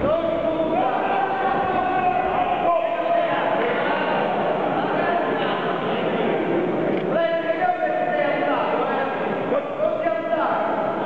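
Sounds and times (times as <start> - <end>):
crowd noise in a hall: 0.0 - 11.0.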